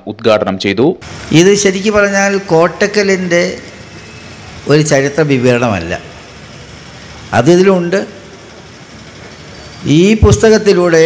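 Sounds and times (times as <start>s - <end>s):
man speaking over microphone: 0.0s - 3.8s, 4.6s - 6.1s, 7.3s - 8.2s, 9.8s - 11.0s
low background noise: 0.0s - 11.0s.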